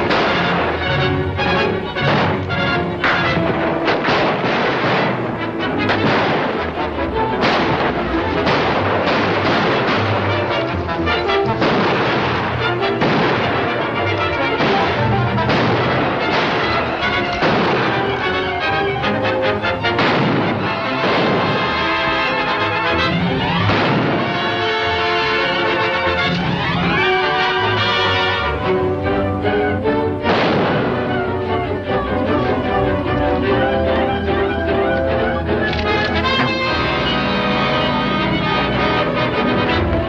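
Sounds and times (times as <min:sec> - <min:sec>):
gunshots: 0:00.0 - 0:28.9, 0:30.2 - 0:31.6
orchestral music with brass: 0:00.0 - 0:40.0.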